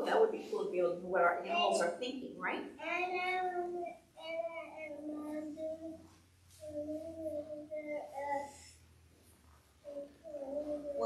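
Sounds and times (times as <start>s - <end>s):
child singing drawn-out notes: 2.8s - 6.0s, 6.6s - 8.7s, 9.9s - 11.0s.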